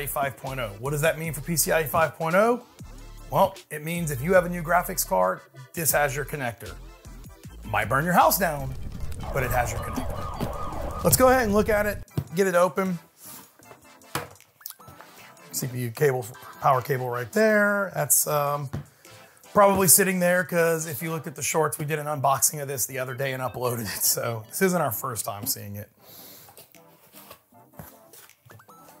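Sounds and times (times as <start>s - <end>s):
quiet background music: 0.0s - 29.0s
short rising tones: 8.5s - 12.0s
cardboard and foam packaging handling: 26.4s - 28.5s.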